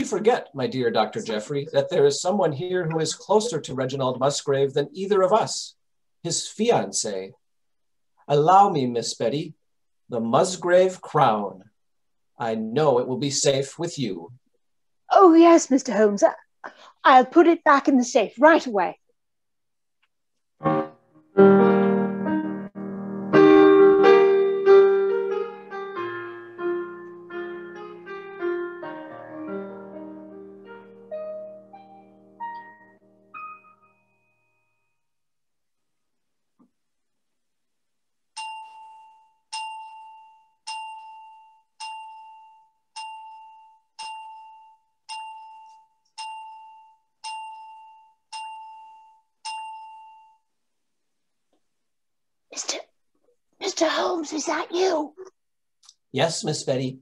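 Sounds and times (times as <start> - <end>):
gentle piano melody: 20.6 - 34.6.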